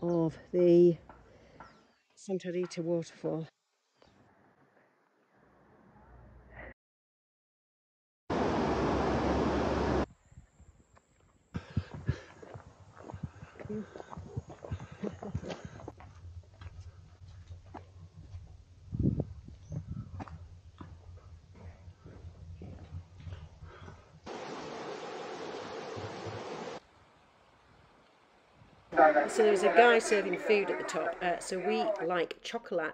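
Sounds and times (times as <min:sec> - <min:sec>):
steady rushing noise: 0:08.3 - 0:10.1, 0:24.3 - 0:26.8
footsteps on stony trail: 0:11.6 - 0:18.6, 0:19.4 - 0:24.0
faint voices: 0:29.0 - 0:32.2.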